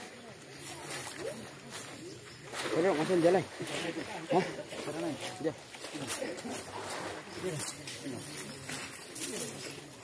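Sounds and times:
voices murmuring: 0.0s - 10.0s.

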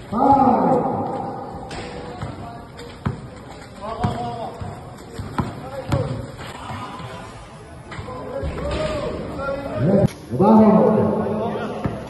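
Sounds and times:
basketball bouncing on concrete: 2.0s - 6.2s.

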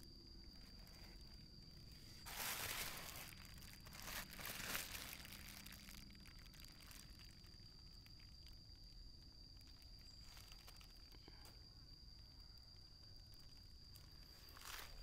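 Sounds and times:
bubble wrap crinkling: 0.7s - 8.6s, 9.4s - 11.1s, 13.4s - 15.0s.

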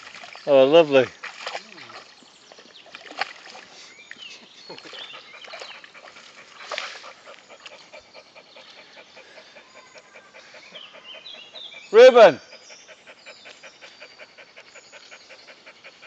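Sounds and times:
water sloshing: 0.0s - 8.1s
dog panting: 4.9s - 16.0s.

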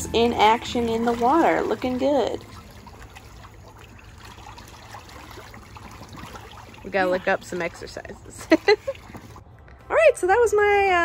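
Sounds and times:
water swishing and splashing: 0.0s - 9.5s.

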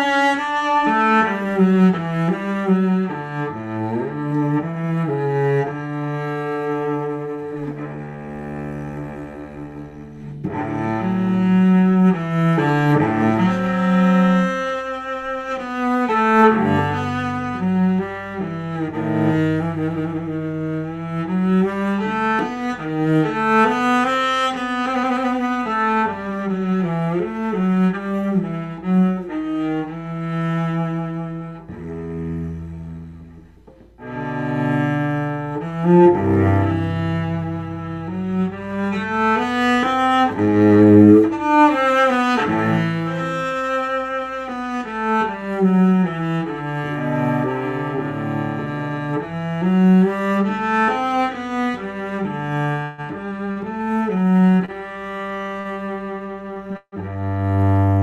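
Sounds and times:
bowed cello notes: 0.0s - 58.0s.

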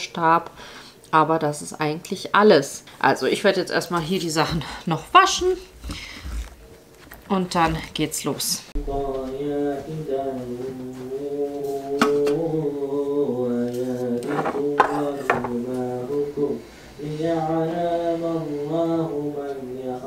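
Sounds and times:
chant-like a cappella singing: 8.8s - 20.0s.

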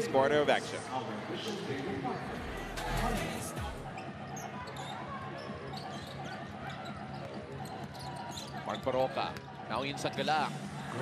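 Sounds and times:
crowd murmur: 0.0s - 8.6s.

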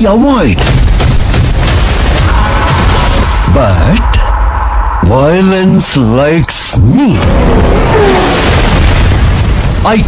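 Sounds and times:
man talking: 0.0s - 0.6s, 3.5s - 4.4s, 5.0s - 7.3s.

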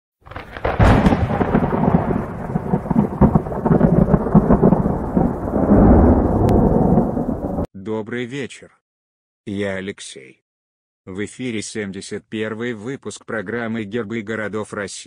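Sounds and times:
thunder crack: 0.2s - 7.7s
rolling thunder rumble: 0.3s - 7.7s.

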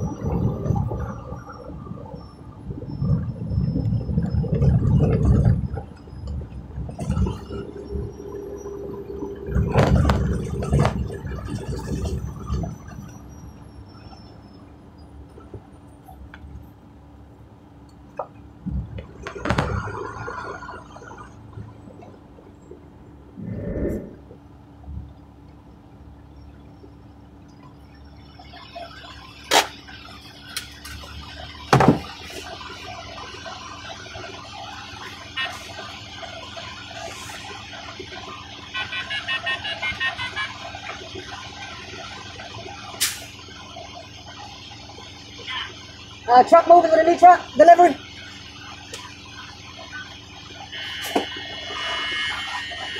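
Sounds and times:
truck engine running: 0.0s - 52.9s.

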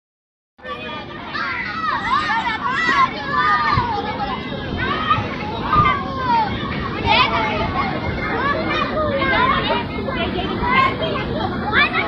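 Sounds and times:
crowd of adults and children chattering: 0.6s - 12.0s.

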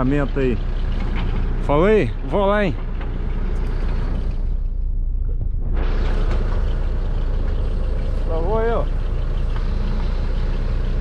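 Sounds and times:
excavator diesel engine idling: 0.0s - 11.0s.

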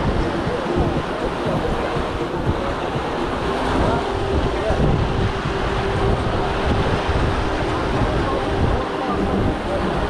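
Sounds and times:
small waves washing onto beach: 0.0s - 10.0s
wind rumble on microphone: 0.0s - 10.0s.

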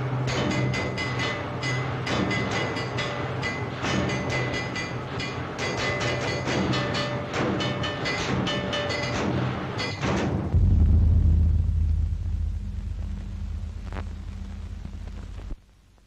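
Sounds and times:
rhythmic industrial clattering: 0.0s - 15.4s
steady low hum: 0.0s - 16.0s.

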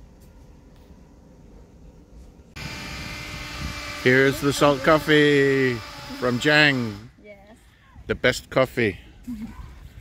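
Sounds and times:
outdoor hiss and rumble: 0.0s - 10.0s.

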